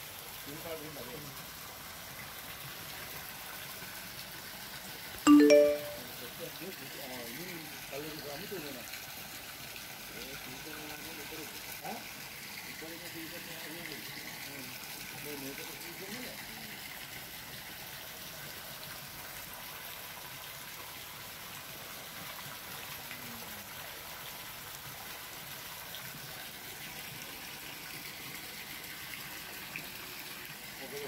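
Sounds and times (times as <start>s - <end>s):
water running and splashing: 0.0s - 5.2s, 6.2s - 31.0s.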